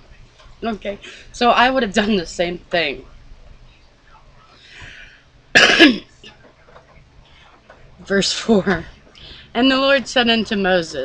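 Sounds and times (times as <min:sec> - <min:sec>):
woman coughing: 0:05.6 - 0:06.1.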